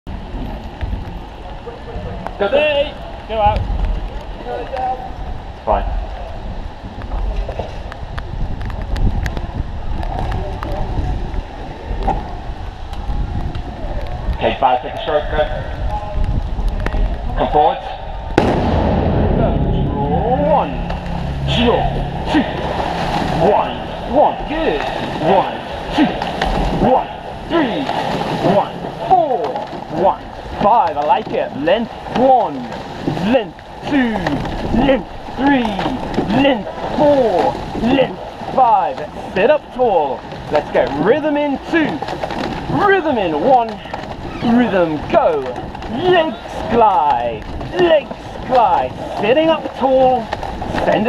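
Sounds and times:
wind buffeting microphone: 0:00.1 - 0:30.6
faint voices: 0:00.6 - 0:51.0
oars splashing water: 0:20.3 - 0:51.0.

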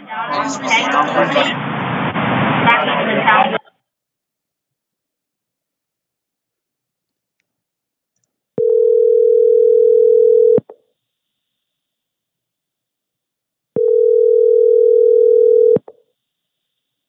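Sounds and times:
telephone ringback tone: 0:08.6 - 0:10.6, 0:13.8 - 0:15.8.

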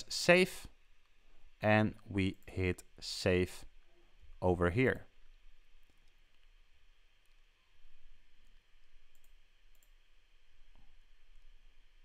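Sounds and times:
low hiss and hum: 0:00.0 - 0:12.0
computer mouse clicks: 0:08.4 - 0:10.0.

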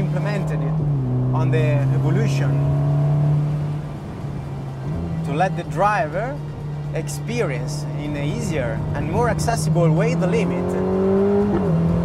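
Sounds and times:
car engine running steadily: 0:00.0 - 0:12.0.

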